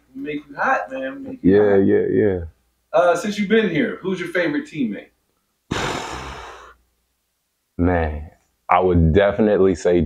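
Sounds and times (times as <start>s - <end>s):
man sighing: 5.7s - 6.8s.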